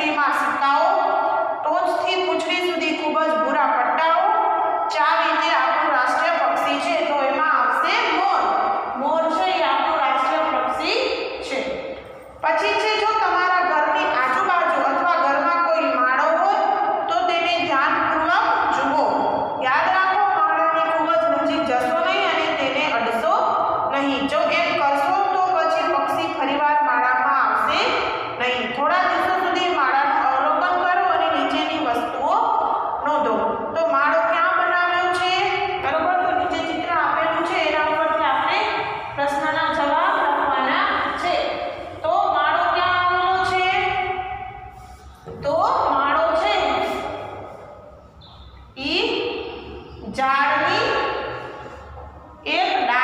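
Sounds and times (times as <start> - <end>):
woman reading aloud: 0.0 - 44.5, 45.3 - 47.8, 48.8 - 53.0.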